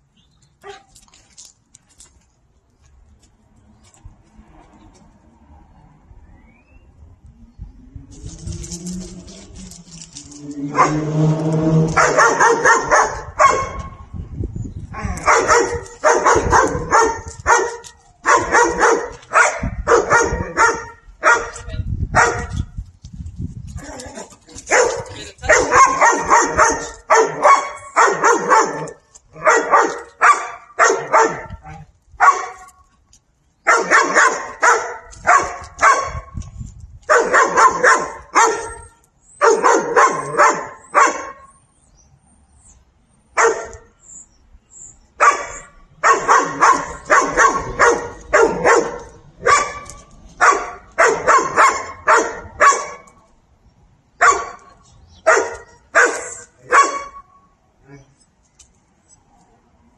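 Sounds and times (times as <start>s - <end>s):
dog barking: 10.7s - 11.1s, 11.9s - 14.0s, 15.2s - 22.6s, 24.7s - 31.6s, 32.2s - 32.7s, 33.7s - 36.4s, 37.1s - 38.8s, 39.4s - 41.5s, 43.4s - 43.9s, 45.2s - 53.1s, 54.2s - 57.3s.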